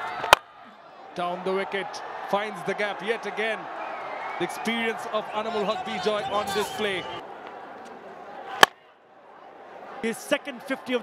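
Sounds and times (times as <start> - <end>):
crowd murmur: 4.4 - 10.1.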